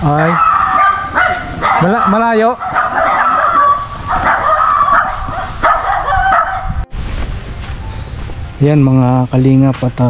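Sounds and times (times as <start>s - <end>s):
dog barking and yelping: 0.0s - 6.8s.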